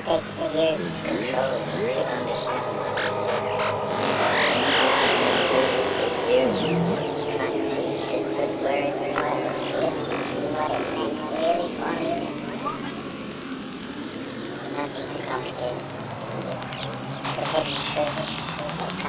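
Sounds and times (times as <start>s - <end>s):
sustained synth pads: 0.0s - 19.0s
swirling electronic effects: 0.0s - 19.0s.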